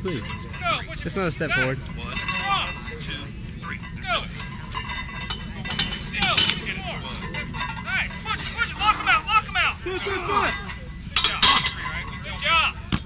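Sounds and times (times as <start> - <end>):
barbells and weight plates clinking: 0.0 - 13.0.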